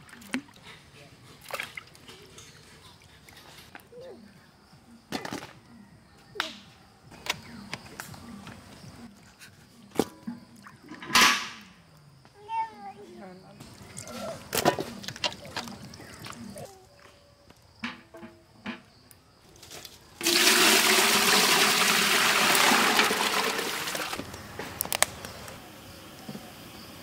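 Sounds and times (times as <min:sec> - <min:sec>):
gourd pieces handled in water: 0:01.3 - 0:03.6, 0:13.6 - 0:16.6
water pouring into metal pot: 0:20.2 - 0:24.3.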